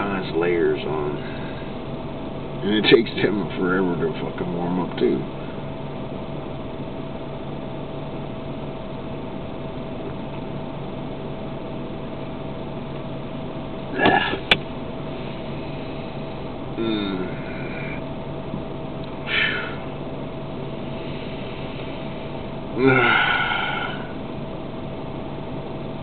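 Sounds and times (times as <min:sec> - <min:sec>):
car heater blower hum: 0:00.0 - 0:26.0.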